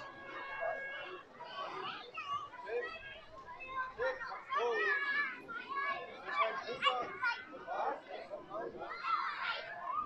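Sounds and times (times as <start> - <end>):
children's voices: 0.0 - 10.0
crowd talking: 0.0 - 10.0.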